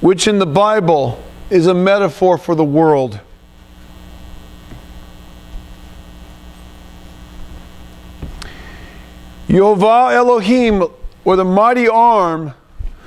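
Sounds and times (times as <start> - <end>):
electrical mains hum: 0.0 - 13.0.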